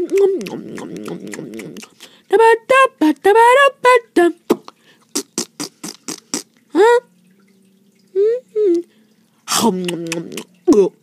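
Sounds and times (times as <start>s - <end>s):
person beatboxing: 0.0s - 2.0s, 5.2s - 6.5s.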